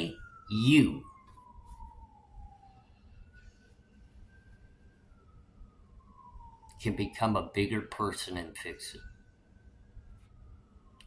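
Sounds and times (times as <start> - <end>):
faint siren wailing: 0.0 - 11.0.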